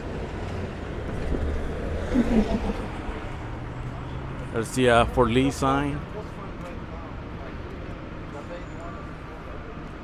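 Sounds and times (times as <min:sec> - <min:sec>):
bus and traffic engine rumble: 0:00.0 - 0:10.0.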